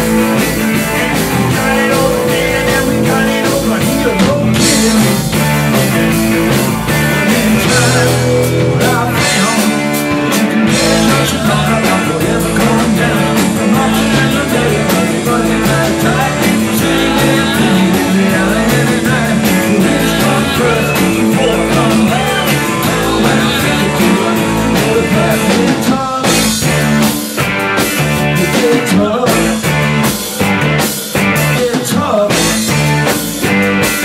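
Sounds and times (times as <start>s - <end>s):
person singing: 0.0s - 26.8s, 28.2s - 34.0s
bass guitar: 0.0s - 34.0s
drum kit: 0.0s - 34.0s
electric guitars: 0.0s - 34.0s.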